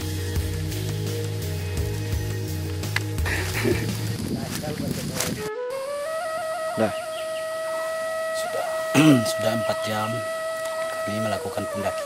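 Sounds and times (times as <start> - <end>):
flute holding a long note: 5.1 - 12.0.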